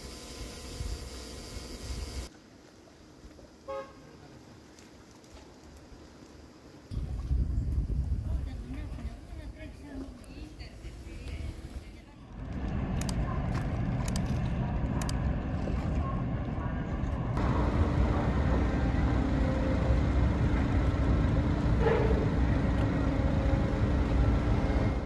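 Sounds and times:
ship engines low rumble: 0:06.4 - 0:25.0
steady droning hum: 0:13.0 - 0:25.0.

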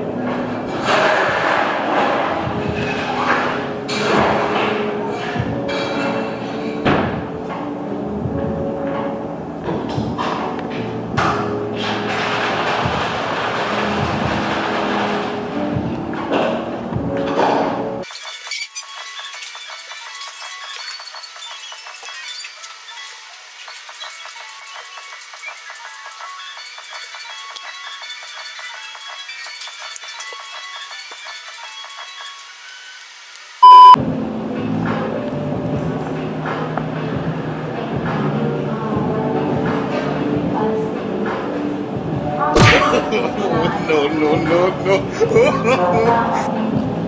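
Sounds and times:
background music: 0:00.0 - 0:31.9, 0:33.6 - 0:47.0
loud bleep tone: 0:33.6 - 0:34.0.

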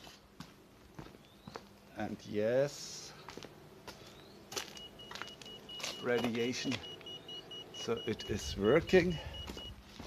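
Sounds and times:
microwave oven humming: 0:03.6 - 0:10.0.

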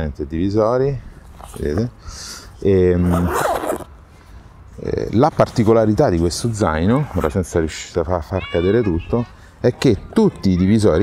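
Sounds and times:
zipper pulled: 0:03.0 - 0:03.9.

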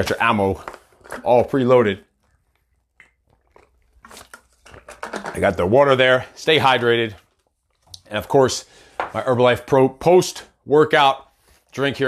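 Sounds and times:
man gulping water: 0:02.0 - 0:05.2.

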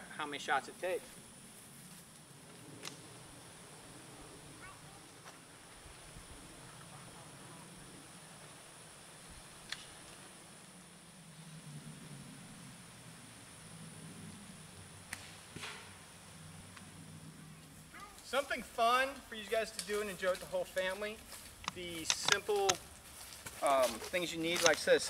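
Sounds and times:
distant voices: 0:00.0 - 0:25.0
faint outdoor ambience: 0:00.0 - 0:25.0
sharp clicks: 0:21.6 - 0:22.8, 0:24.5 - 0:24.9.

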